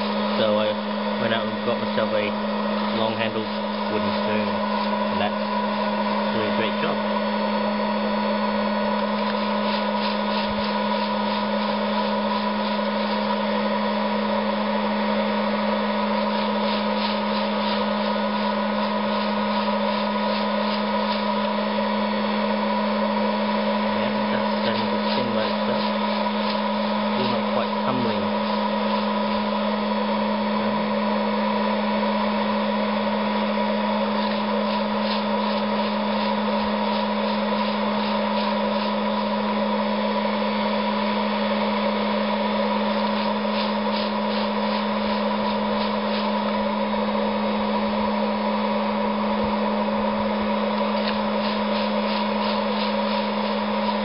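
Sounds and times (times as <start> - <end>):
popcorn popper fan humming: 0.0 - 54.0
coffee beans rattling: 9.1 - 13.6, 16.0 - 22.1, 23.7 - 29.6, 33.8 - 46.9, 50.8 - 54.0.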